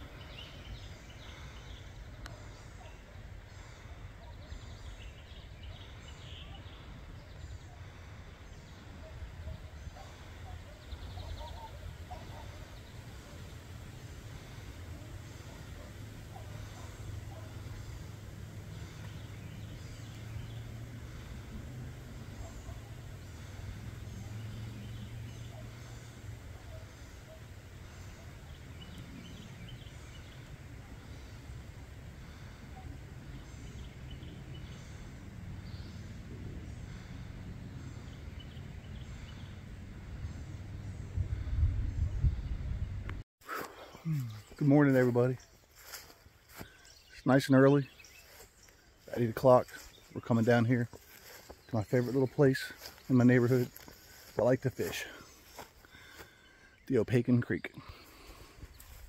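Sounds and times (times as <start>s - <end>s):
low rumble on microphone: 4.4s - 43.2s.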